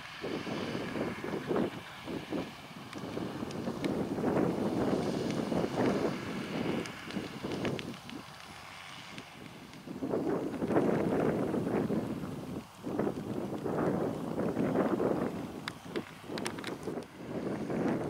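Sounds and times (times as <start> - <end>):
distant tractor running: 0.0 - 18.0
wind buffeting microphone: 0.0 - 18.0.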